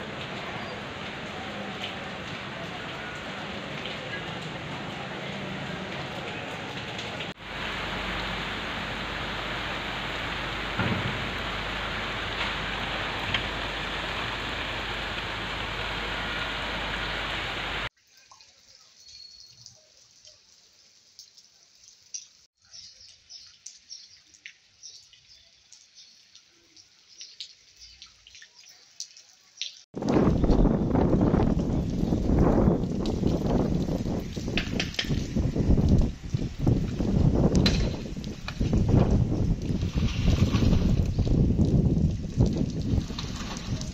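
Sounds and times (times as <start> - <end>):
heavy rain falling: 0.0 - 18.3, 30.0 - 43.9
faint drips and ticks: 0.1 - 7.4, 17.9 - 43.9.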